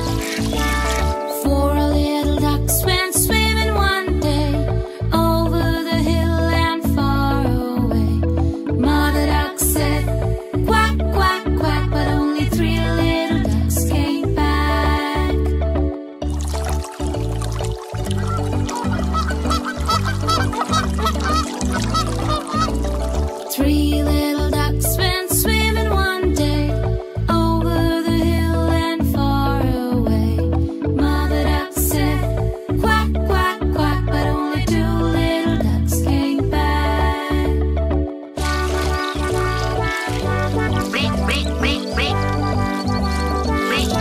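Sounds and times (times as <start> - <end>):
children's music with bass line: 0.0 - 44.0
cartoon duck quacks: 40.7 - 44.0.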